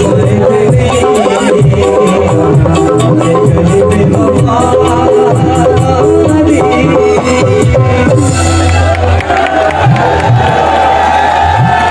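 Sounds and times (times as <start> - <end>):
crowd cheering: 8.4 - 11.9.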